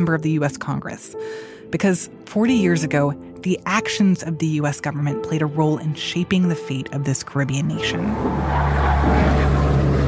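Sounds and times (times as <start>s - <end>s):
narration: 0.0s - 8.4s.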